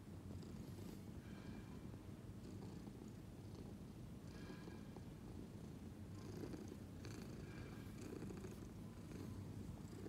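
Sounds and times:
cat purring: 0:02.4 - 0:10.0.

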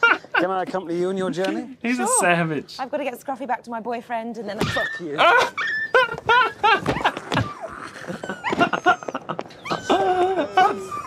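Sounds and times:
dog yelping and whimpering: 0:04.7 - 0:11.0.

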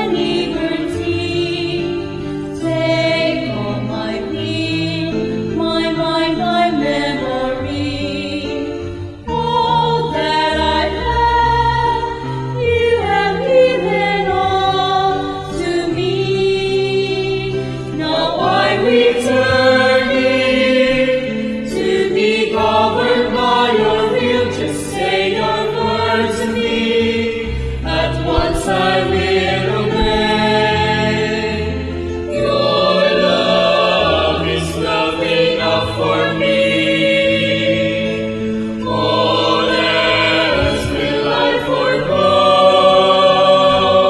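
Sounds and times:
choir singing a hymn: 0:00.0 - 0:44.0.

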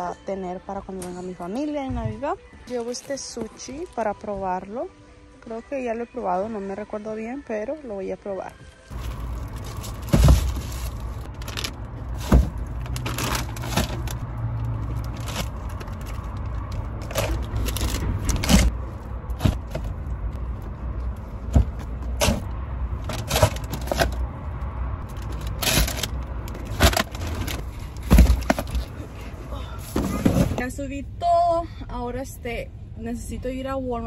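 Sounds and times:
plastic bags rustling: 0:08.9 - 0:18.7
bags and boxes thumping down: 0:09.9 - 0:11.0.

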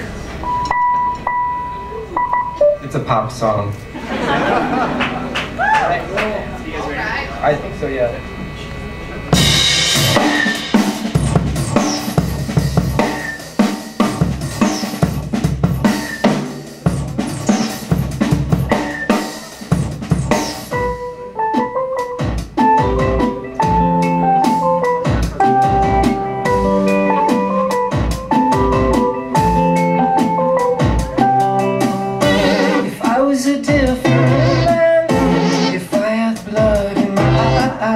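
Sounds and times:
keyboard notes: 0:00.4 - 0:03.3, 0:18.4 - 0:37.9
drum kit beat: 0:09.3 - 0:37.9
guitar: 0:09.3 - 0:37.9.

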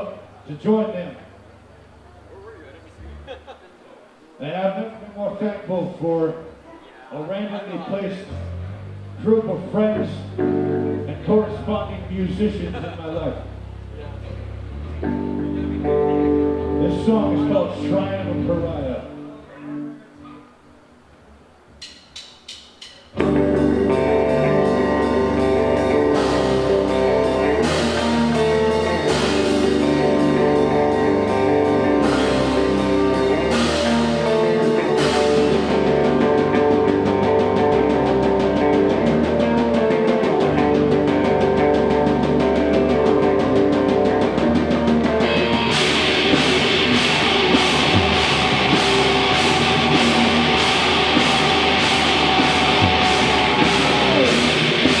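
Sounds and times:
live metal band playing: 0:08.3 - 0:20.1, 0:22.8 - 0:55.0.

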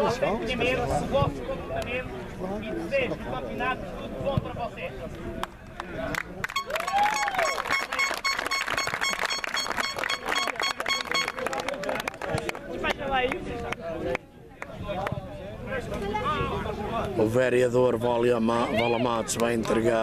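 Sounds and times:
crowd applause: 0:06.1 - 0:12.7.

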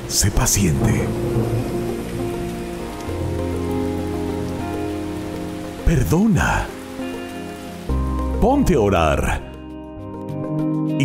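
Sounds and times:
steady rain falling: 0:00.0 - 0:09.7
soft music with held chords: 0:00.0 - 0:11.0.

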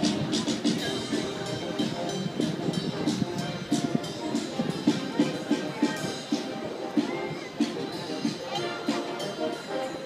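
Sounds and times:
drum strokes: 0:00.0 - 0:10.0
military band playing a march: 0:00.0 - 0:10.0.

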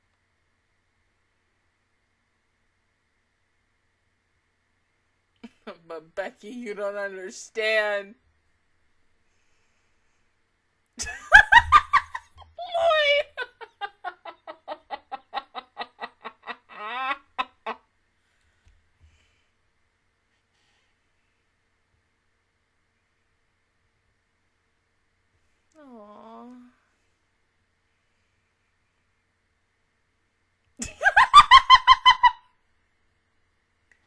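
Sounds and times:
woman laughing hard: 0:11.0 - 0:17.8, 0:30.8 - 0:32.4.

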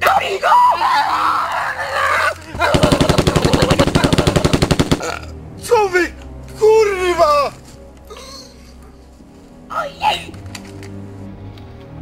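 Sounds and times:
loud cry: 0:00.0 - 0:05.2.

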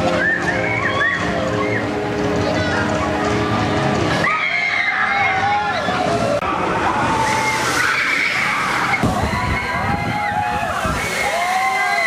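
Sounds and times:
roller coaster riders screaming: 0:00.0 - 0:02.8, 0:03.9 - 0:12.0
water splashing: 0:06.5 - 0:12.0.

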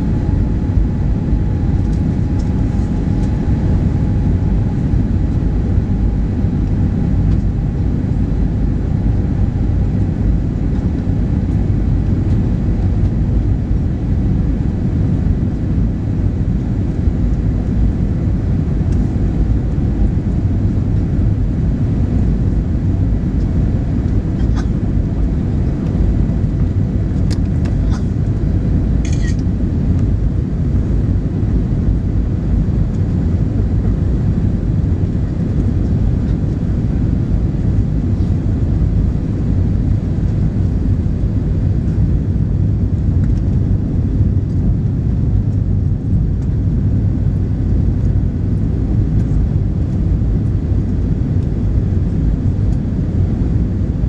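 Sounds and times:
faint steady whine: 0:00.0 - 0:54.0
jet engine cabin rumble: 0:00.0 - 0:54.0.

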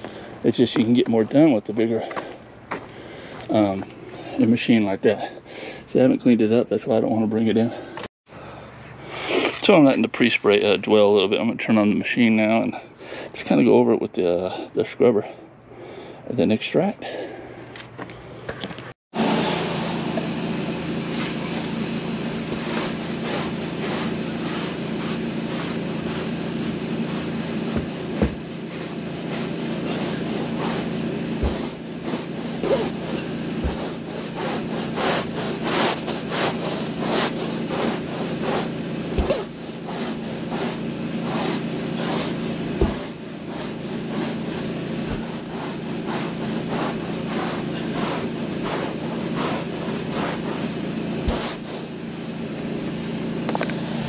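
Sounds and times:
cleaning machine humming: 0:19.2 - 0:54.0
scrub brush rubbing carpet: 0:21.1 - 0:53.4.

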